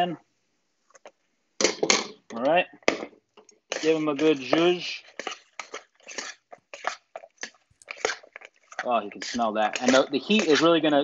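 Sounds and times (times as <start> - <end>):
tongs tossing fries in a bowl: 3.6 - 10.9.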